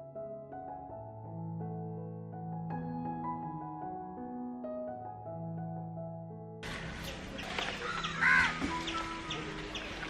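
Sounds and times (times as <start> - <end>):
soft background music: 0.0 - 10.0
crow cawing: 7.8 - 8.6.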